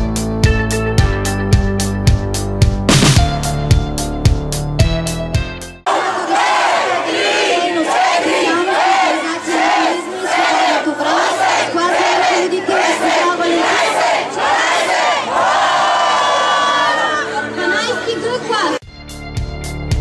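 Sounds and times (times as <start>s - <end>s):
crowd shouting and chanting: 5.9s - 18.7s.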